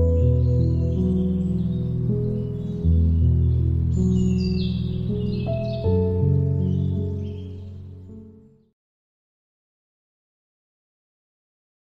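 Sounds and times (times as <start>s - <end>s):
birdsong chirps: 0.0s - 8.8s
calm instrumental music: 0.0s - 8.8s.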